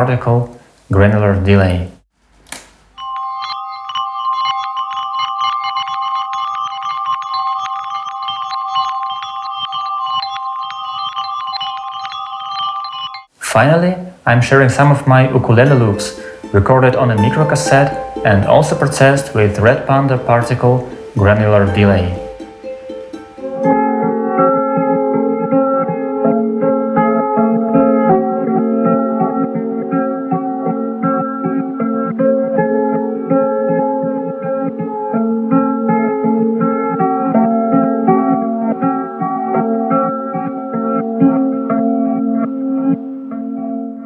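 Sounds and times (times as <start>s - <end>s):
held glockenspiel chiming tones: 3.0s - 13.3s, 17.2s - 23.8s
rapid short struck notes: 15.7s - 23.7s.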